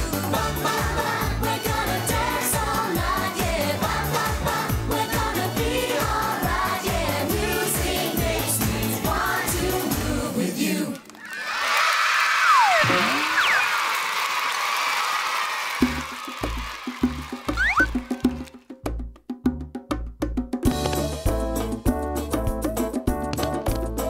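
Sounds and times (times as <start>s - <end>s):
children cheering and shrieking: 11.2s - 16.7s
bongo rhythm: 15.8s - 24.0s.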